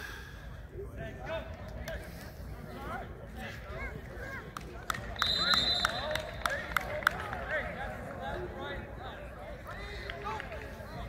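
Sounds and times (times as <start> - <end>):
people talking at once: 0.7 - 11.0.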